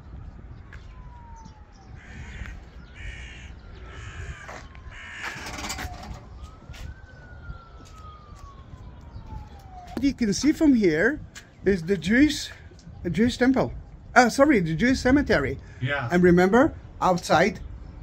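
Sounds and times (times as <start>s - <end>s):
faint distant siren: 0.0s - 17.0s
crows cawing: 2.0s - 5.7s.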